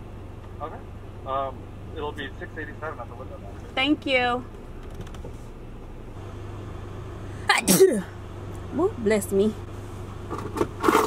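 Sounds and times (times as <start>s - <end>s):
car engine idling: 0.0s - 11.0s
woman sneezing: 7.4s - 8.1s.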